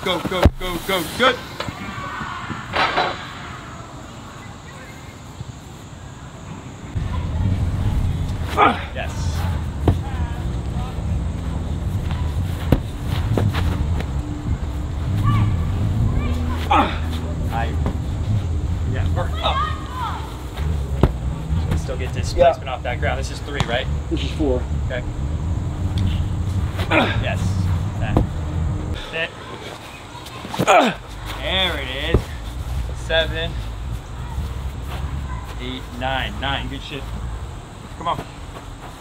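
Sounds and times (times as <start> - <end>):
people shouting and grunting: 0.0 - 4.6, 6.1 - 38.2
steady low hum: 3.4 - 39.0
medicine ball dull knocks: 20.9 - 21.9.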